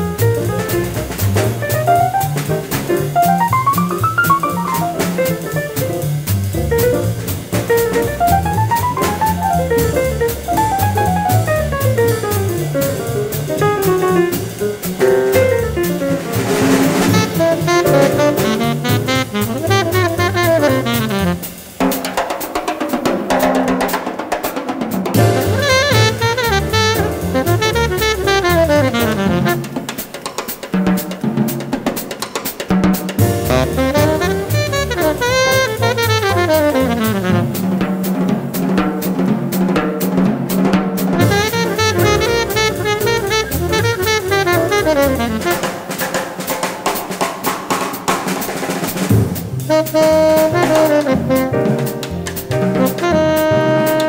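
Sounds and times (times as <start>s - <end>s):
sustained piano and bass notes: 0.0s - 21.7s, 25.2s - 29.9s, 33.2s - 39.6s, 41.0s - 45.8s, 49.1s - 54.0s
drum kit break: 0.0s - 54.0s
tenor saxophone: 16.9s - 21.5s, 25.2s - 29.8s, 33.5s - 37.7s, 41.2s - 45.9s, 49.7s - 52.0s, 52.6s - 54.0s.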